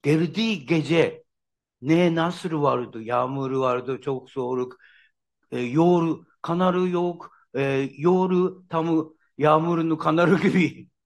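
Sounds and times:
man speaking: 0.0 - 4.8, 5.5 - 10.9.

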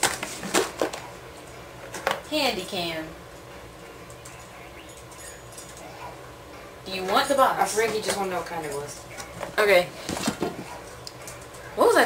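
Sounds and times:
handling knocks and rustles: 0.0 - 2.3, 7.0 - 11.7.

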